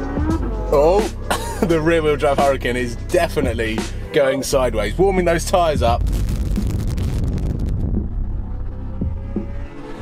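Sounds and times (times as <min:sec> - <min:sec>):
music: 0:00.0 - 0:10.0
wind and road noise rumble: 0:05.9 - 0:10.0.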